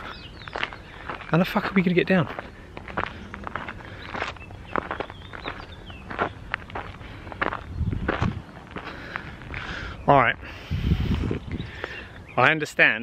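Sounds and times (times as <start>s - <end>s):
footsteps walking on a path: 0.0s - 12.3s.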